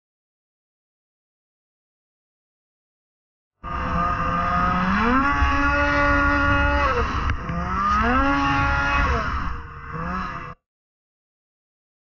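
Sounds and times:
snowmobile engine revving: 0:03.6 - 0:10.6.

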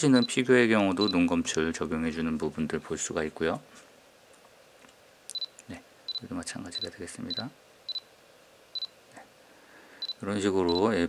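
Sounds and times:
camera autofocus beep: 0:05.3 - 0:06.2, 0:06.8 - 0:08.1, 0:10.0 - 0:10.8.

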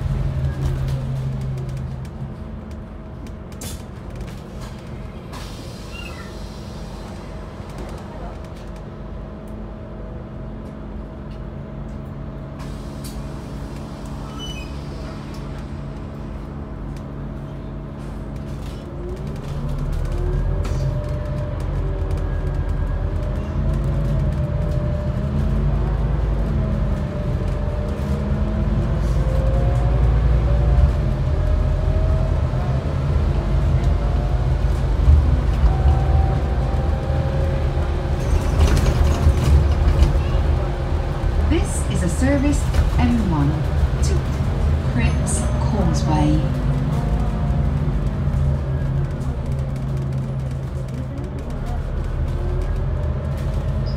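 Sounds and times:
bus engine idling: 0:00.0 - 0:53.9
road noise: 0:00.0 - 0:53.9.

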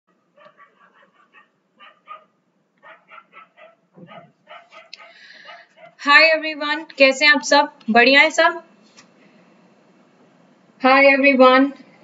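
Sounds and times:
dog barking faintly: 0:00.4 - 0:06.0.

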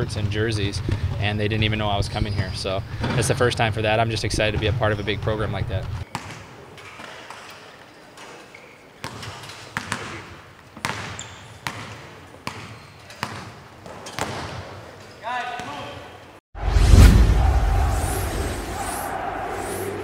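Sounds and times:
basketballs bouncing on hardwood: 0:09.0 - 0:14.6.

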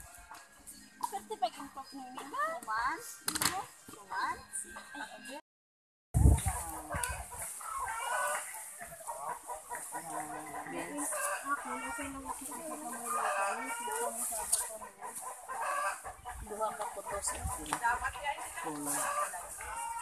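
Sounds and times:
chickens clucking: 0:06.2 - 0:20.0.

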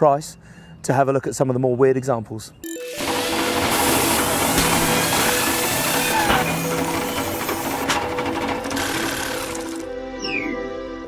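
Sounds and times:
music with mechanical rattle: 0:02.7 - 0:09.9.

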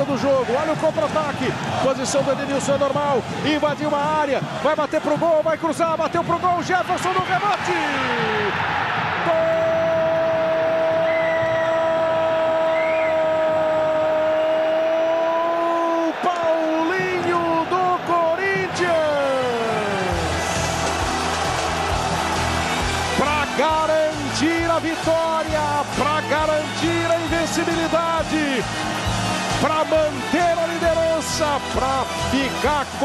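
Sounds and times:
commentator shouting goal: 0:00.0 - 0:08.6, 0:09.2 - 0:11.1, 0:12.0 - 0:20.4, 0:23.2 - 0:28.7, 0:29.6 - 0:33.0.

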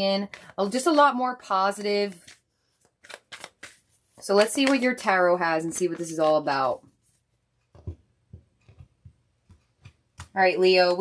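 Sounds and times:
cards tapping on tabletop: 0:07.8 - 0:10.4.

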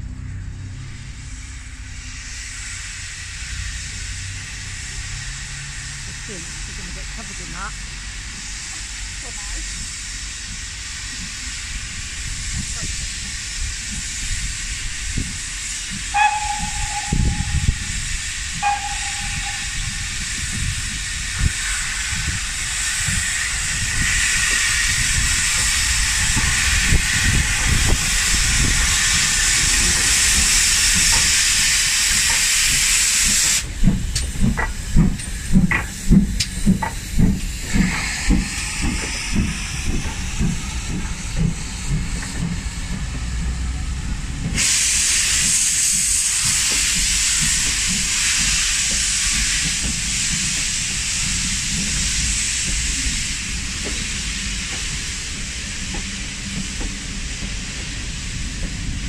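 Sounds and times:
loud hiss of steam: 0:00.1 - 0:59.0
train wheels thumping over rail joints: 0:12.5 - 0:59.0
steam whistle toots: 0:16.1 - 0:20.2.

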